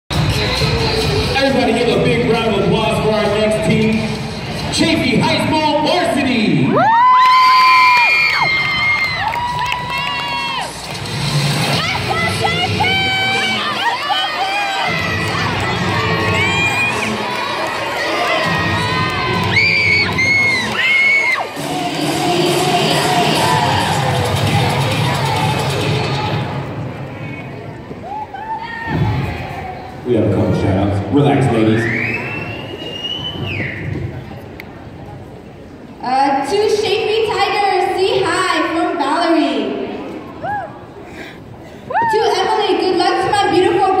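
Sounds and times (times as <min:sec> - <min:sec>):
low crowd murmur: 0:00.1 - 0:06.7, 0:09.3 - 0:44.0
crowd cheering and screaming: 0:06.7 - 0:10.9, 0:11.6 - 0:26.4
long high whistle: 0:31.8 - 0:33.8.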